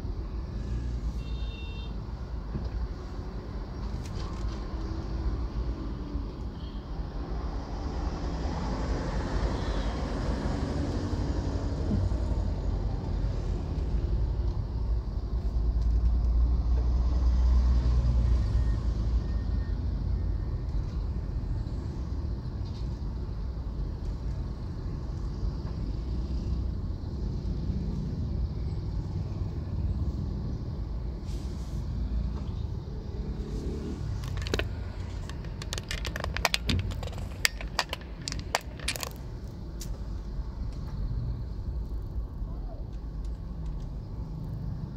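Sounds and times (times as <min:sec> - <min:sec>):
traffic noise: 0:00.0 - 0:44.9.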